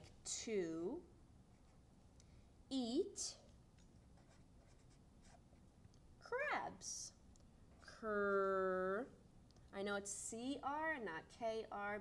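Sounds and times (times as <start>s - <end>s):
marker scratching on paper: 4.2s - 5.5s.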